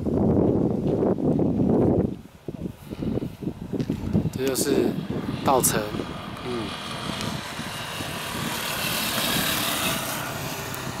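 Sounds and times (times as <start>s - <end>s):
vehicle passing on road: 2.8s - 11.0s.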